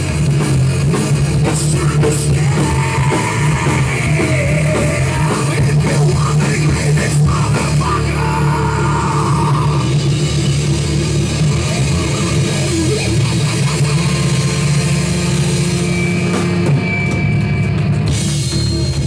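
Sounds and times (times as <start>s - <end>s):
heavy metal band playing: 0.0s - 19.0s
person singing: 1.4s - 10.0s.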